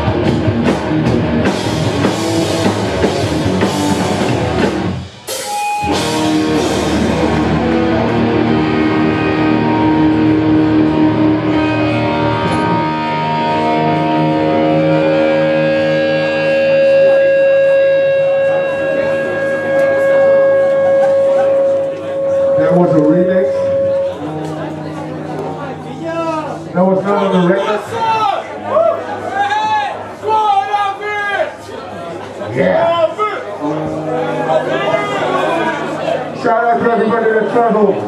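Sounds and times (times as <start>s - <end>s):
live punk band playing: 0.0s - 30.7s, 33.6s - 38.0s
held guitar note ringing: 5.3s - 27.9s.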